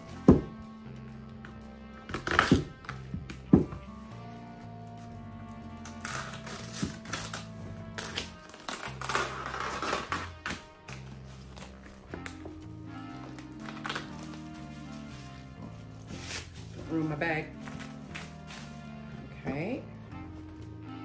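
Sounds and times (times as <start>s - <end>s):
background music with bass line: 0.0s - 21.0s
duct tape ripping: 2.1s - 3.4s, 5.8s - 12.4s, 13.3s - 14.6s
tape crinkling: 5.8s - 12.6s, 13.2s - 18.9s.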